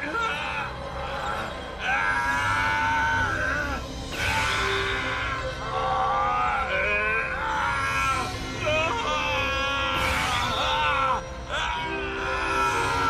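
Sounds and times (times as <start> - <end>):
dramatic cartoon music: 0.0 - 13.0.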